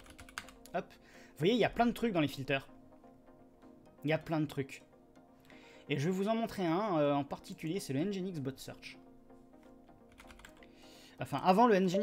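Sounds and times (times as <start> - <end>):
faint keyboard typing: 0.0 - 0.8, 10.1 - 10.7.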